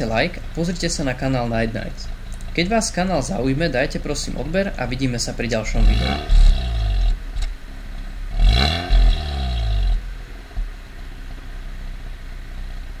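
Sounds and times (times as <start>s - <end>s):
car engine idling and revving: 0.0s - 13.0s.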